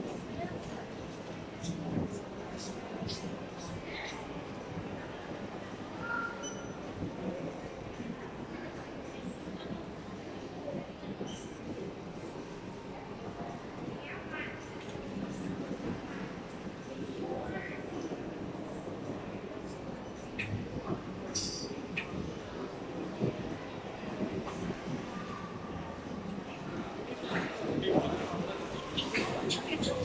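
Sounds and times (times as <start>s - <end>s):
faint voices: 0.0s - 30.0s
low rumble of hall ambience: 0.0s - 30.0s.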